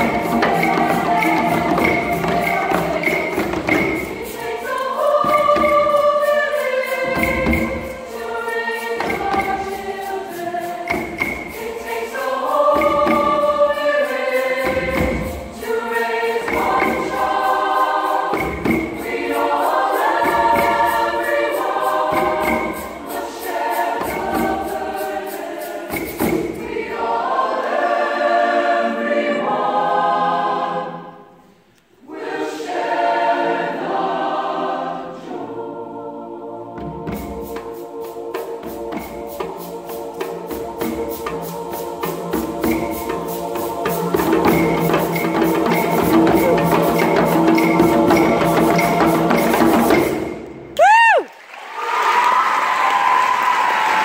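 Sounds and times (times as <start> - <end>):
hand drums beating slowly: 0.0 - 6.2, 36.8 - 50.4
choir singing in parts: 0.0 - 50.8, 51.7 - 54.0.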